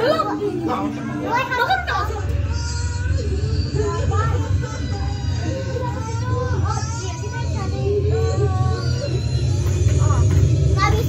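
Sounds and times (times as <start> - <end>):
children calling out: 0.0 - 11.0
loud steady low rumble: 1.8 - 11.0.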